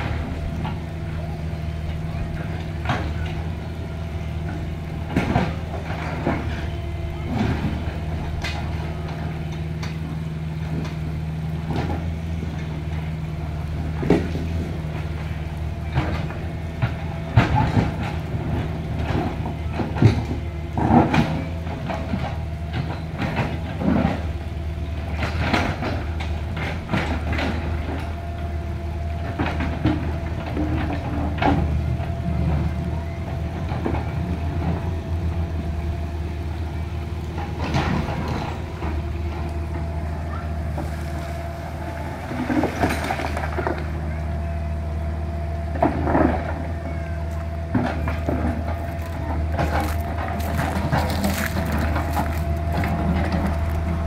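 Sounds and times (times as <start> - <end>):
excavator diesel engine running: 0.0 - 54.0
clanks and knocks on stones: 47.9 - 53.9.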